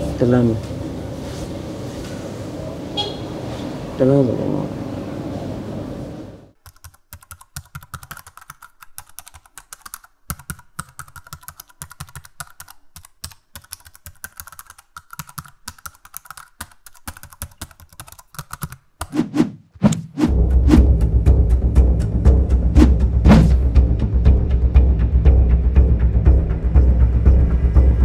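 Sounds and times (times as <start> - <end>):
laptop keyboard typing: 6.6 - 19.2.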